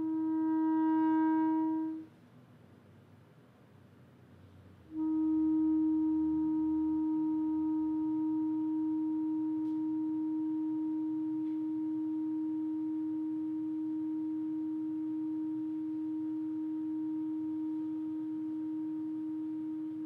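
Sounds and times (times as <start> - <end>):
clarinet long steady note: 0.0 - 2.2, 4.8 - 20.0.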